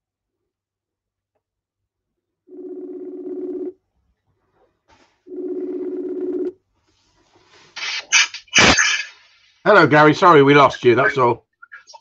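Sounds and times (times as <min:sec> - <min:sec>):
phone ringing tone: 0:02.5 - 0:03.8, 0:05.3 - 0:06.6.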